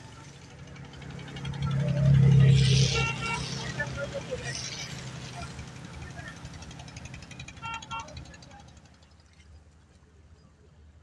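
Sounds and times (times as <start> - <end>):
vehicle passing by: 0.0 - 7.6.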